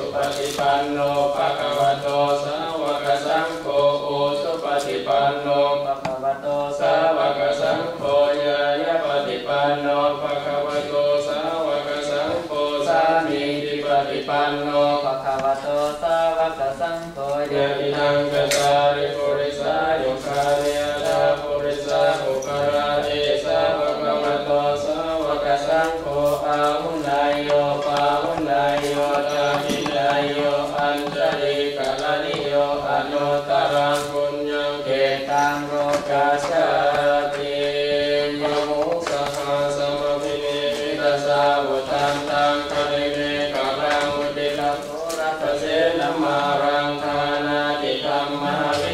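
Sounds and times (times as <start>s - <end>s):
monks chanting in monotone: 0.0s - 48.9s.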